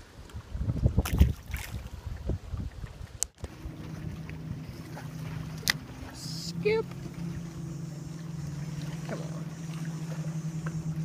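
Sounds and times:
wind buffeting microphone: 0.0 - 11.0
boat motor humming: 3.4 - 11.0.

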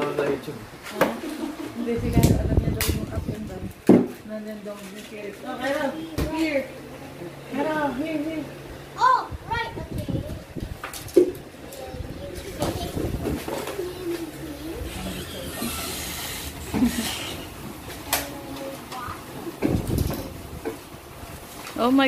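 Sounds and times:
faint murmuring voices: 11.5 - 20.6.

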